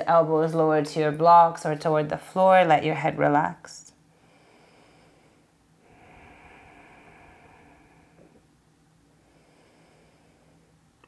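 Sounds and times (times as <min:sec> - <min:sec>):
woman breathing out: 0:04.3 - 0:08.4.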